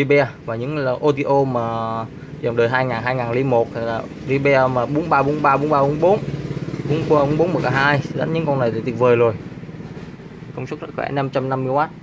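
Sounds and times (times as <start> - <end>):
man talking: 0.0 - 6.2, 6.8 - 9.4, 10.5 - 12.0.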